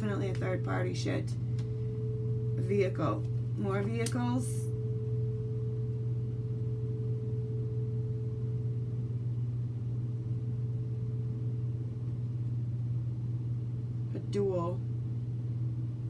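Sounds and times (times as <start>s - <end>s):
faint high steady tone: 0.0s - 16.0s
steady low hum: 0.0s - 16.0s.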